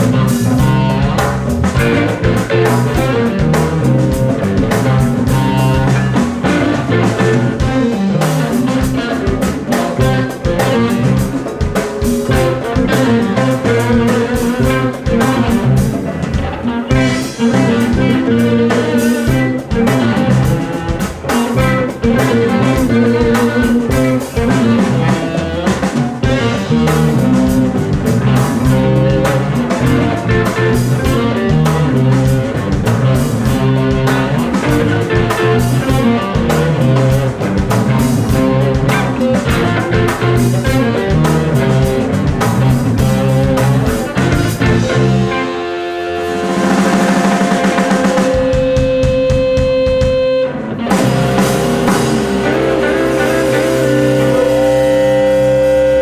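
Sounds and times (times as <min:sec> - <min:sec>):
live band playing blues-funk: 0:00.0 - 0:56.0.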